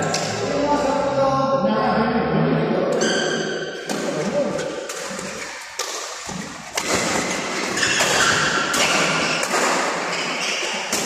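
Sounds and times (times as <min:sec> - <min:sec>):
rackets hitting shuttlecock: 0:03.0 - 0:11.0.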